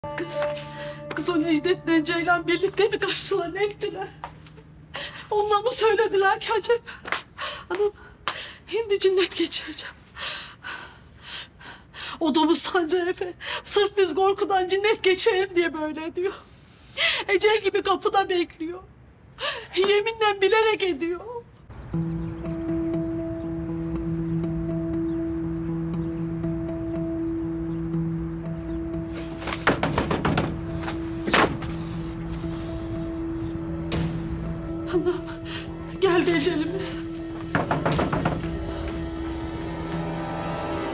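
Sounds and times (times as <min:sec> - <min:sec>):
dramatic score low held notes: 0:00.0 - 0:06.2, 0:21.7 - 0:40.9
sharp knocks: 0:29.4 - 0:31.8, 0:37.4 - 0:39.0.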